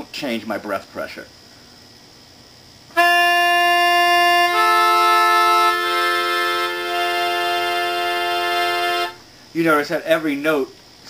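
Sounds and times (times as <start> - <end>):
free-reed keyboard chord: 3.0 - 9.2.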